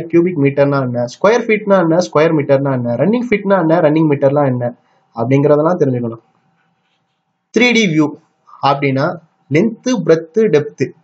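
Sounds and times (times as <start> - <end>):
man narrating: 0.0 - 6.2, 7.6 - 11.0.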